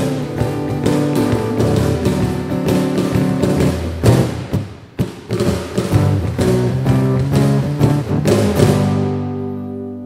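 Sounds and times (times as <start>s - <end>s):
acoustic guitar strumming: 0.0s - 4.6s, 5.5s - 10.0s
cajon beats: 0.0s - 9.8s.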